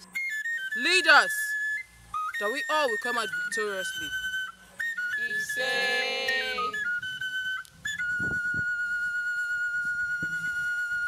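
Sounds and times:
high flute-like line: 0.0s - 11.0s.

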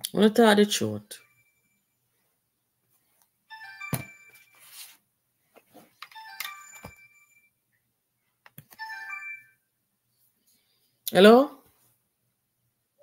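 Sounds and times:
melodic phone ringtone: 3.5s - 5.0s, 6.1s - 7.6s, 8.8s - 9.7s.

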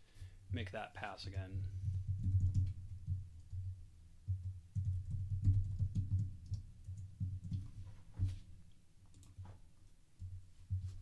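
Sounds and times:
typing on computer keyboard: 2.1s - 3.7s, 4.4s - 7.7s.

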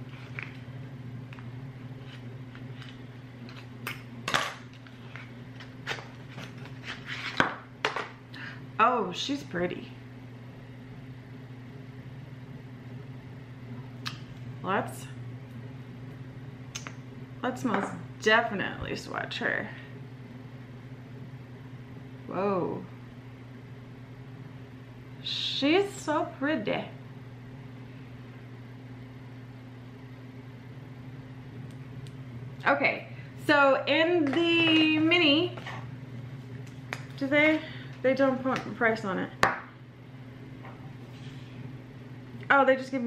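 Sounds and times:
low electrical hum: 0.0s - 43.0s.

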